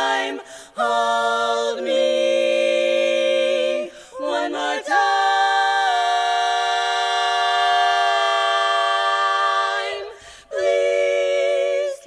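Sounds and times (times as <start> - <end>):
women singing a cappella chord: 0.0 - 12.0.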